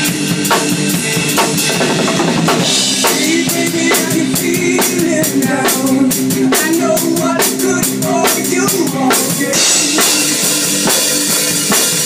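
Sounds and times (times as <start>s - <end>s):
drum kit playing: 0.0s - 12.0s
recorded rock song: 0.0s - 12.0s.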